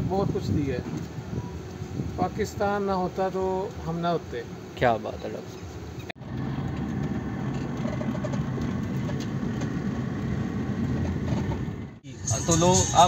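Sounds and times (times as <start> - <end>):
road noise: 0.0 - 13.0
vehicle engine rumble: 0.0 - 13.0.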